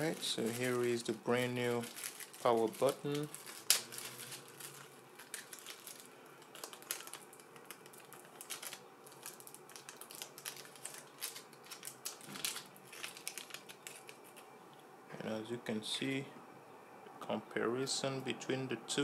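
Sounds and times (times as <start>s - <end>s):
plastic bags rustling and crinkling: 0.0s - 14.5s.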